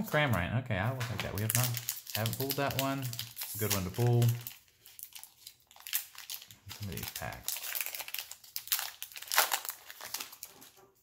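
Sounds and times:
foil wrapper crinkling: 1.1s - 11.0s.

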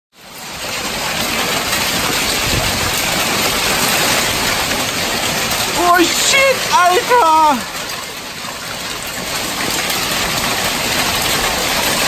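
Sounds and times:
heavy rain pouring: 0.2s - 12.0s.

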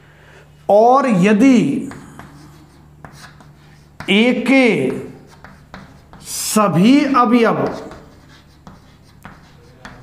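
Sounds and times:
man's voice: 0.7s - 2.1s
chalk scratching on chalkboard: 1.9s - 10.0s.

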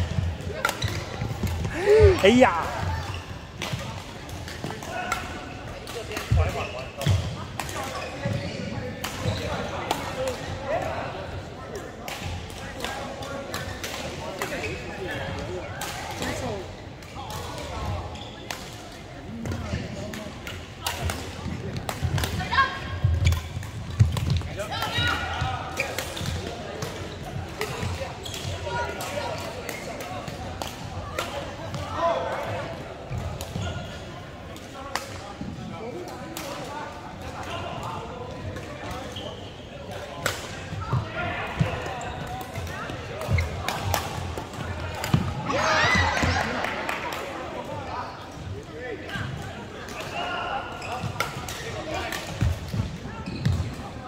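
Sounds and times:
rackets hitting shuttlecock: 0.2s - 1.9s, 17.3s - 22.5s, 41.6s - 47.3s, 50.9s - 53.7s.

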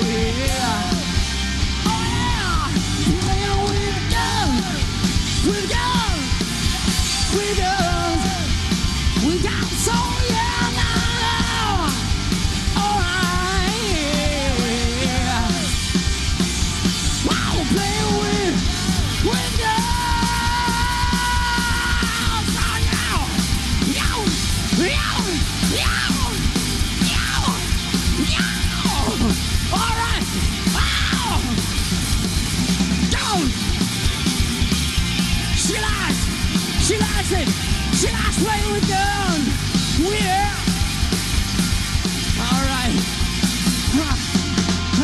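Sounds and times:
bass and drums: 0.0s - 45.0s
distorted lead guitar bending notes: 0.0s - 45.0s.

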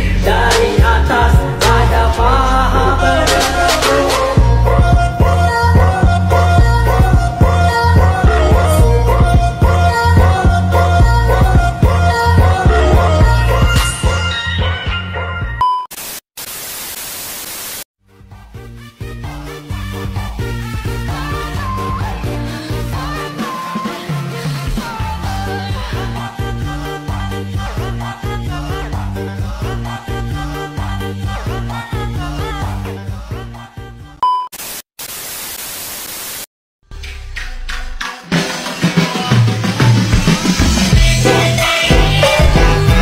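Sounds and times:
tv static hiss: 15.9s - 17.9s, 34.6s - 36.5s
high test-tone beep: 34.2s - 34.5s.

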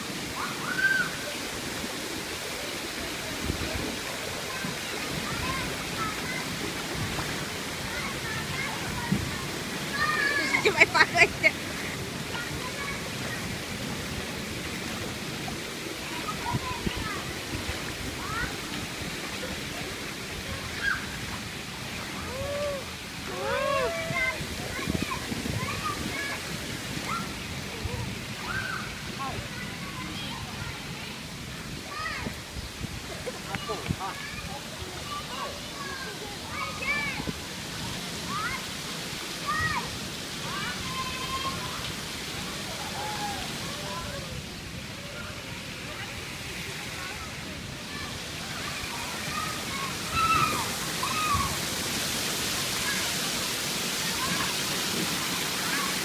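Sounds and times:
rushing pool water: 0.0s - 56.0s.

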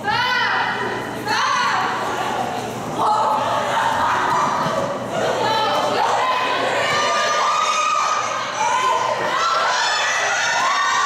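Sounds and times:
women shouting and cheering: 0.0s - 2.1s, 3.0s - 11.0s.

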